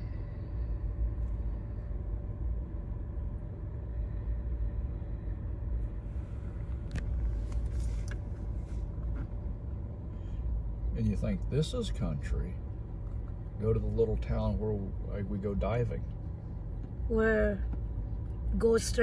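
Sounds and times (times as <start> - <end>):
car engine rumble: 0.0 - 19.0
faint steady hum: 0.0 - 19.0
road noise: 0.0 - 19.0.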